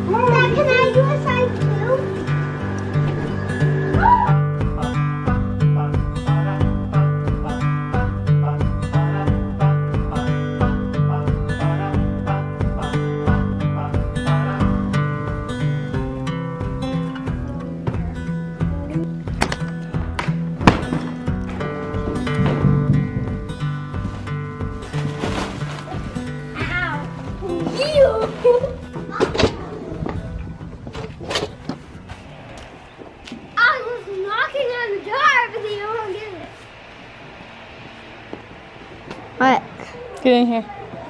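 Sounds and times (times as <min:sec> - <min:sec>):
children's voices and squeals: 0:00.0 - 0:02.7, 0:03.5 - 0:04.5, 0:26.5 - 0:30.1, 0:33.5 - 0:36.6
acoustic guitar music: 0:00.0 - 0:36.7
knocks and thuds: 0:19.3 - 0:26.2.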